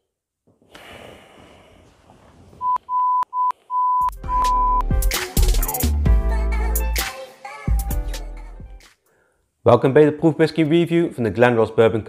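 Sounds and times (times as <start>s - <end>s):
high electronic beeps: 2.6s - 4.9s
bass-heavy intro music: 4.1s - 7.0s.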